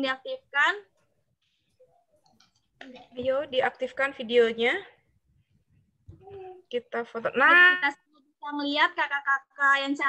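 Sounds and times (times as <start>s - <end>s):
woman speaking: 0.0s - 0.9s, 3.0s - 5.0s, 6.7s - 10.0s.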